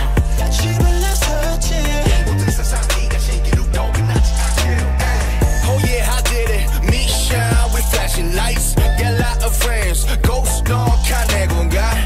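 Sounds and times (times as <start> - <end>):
pop music with drum beat: 0.0 - 12.0.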